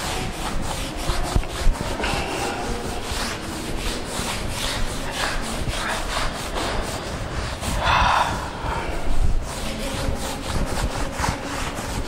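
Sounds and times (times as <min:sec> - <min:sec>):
duster rubbing on chalkboard: 0:00.0 - 0:12.0.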